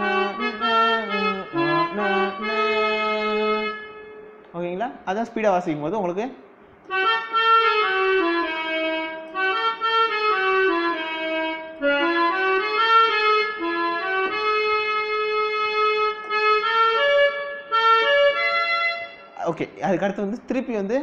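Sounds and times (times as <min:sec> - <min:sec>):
electronic keyboard melody: 0:00.0 - 0:05.4, 0:06.8 - 0:21.0.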